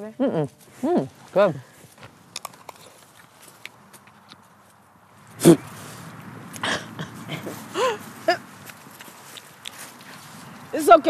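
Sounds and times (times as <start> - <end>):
person chewing raw apple: 0.6 - 10.7.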